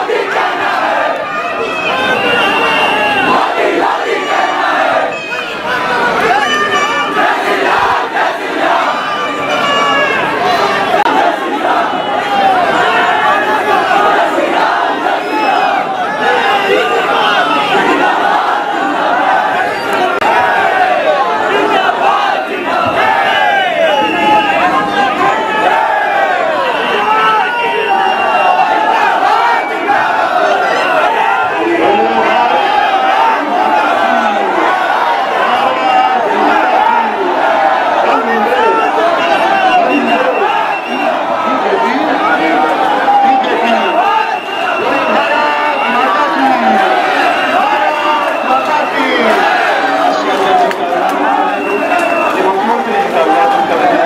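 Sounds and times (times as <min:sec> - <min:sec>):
crowd shouting and chanting: 0:00.0 - 0:54.0.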